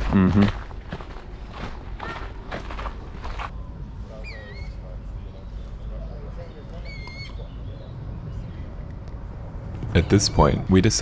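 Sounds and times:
steady low rumble: 7.5s - 11.0s.

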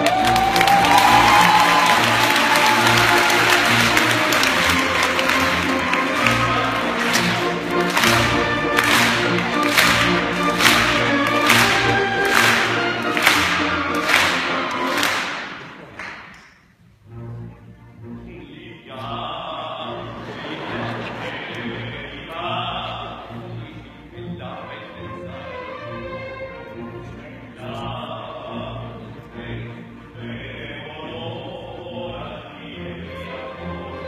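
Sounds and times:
audience applause: 0.0s - 16.4s
symphony orchestra playing: 0.0s - 34.0s.

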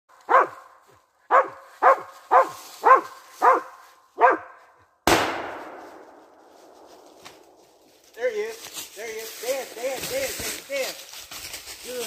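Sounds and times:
dog barking: 0.3s - 4.8s
gunshot: 5.0s - 7.6s.

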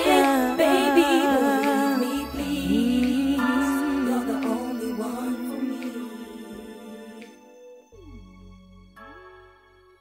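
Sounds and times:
women singing harmonies: 0.0s - 7.6s
sparse backing music: 0.0s - 10.0s.

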